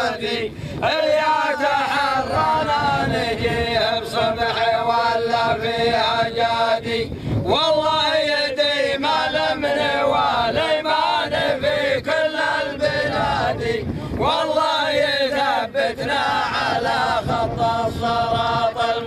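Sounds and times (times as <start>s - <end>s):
men chanting poetry: 0.0s - 19.0s.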